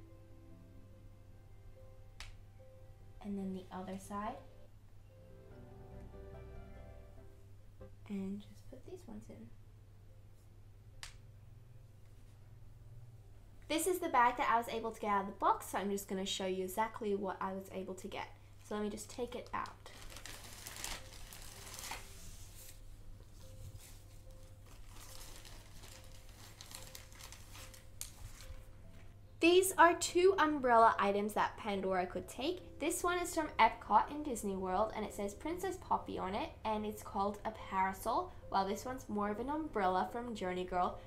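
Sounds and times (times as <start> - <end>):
low steady hum: 0.0 - 41.0
plastic bag crinkling: 19.0 - 22.8, 23.4 - 28.8.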